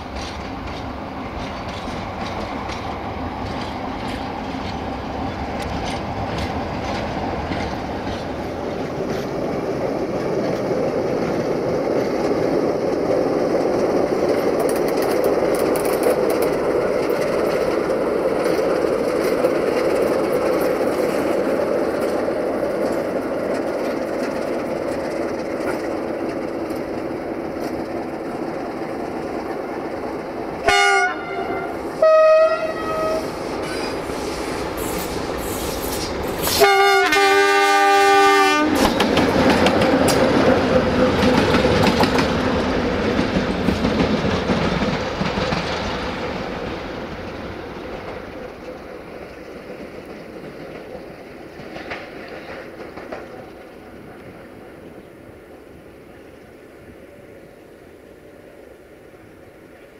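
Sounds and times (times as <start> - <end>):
wheels clattering over rail joints: 0.0 - 31.1, 38.7 - 55.1
diesel locomotive engine running: 0.0 - 51.7
locomotive horn blasts: 30.6 - 33.4, 36.5 - 38.8.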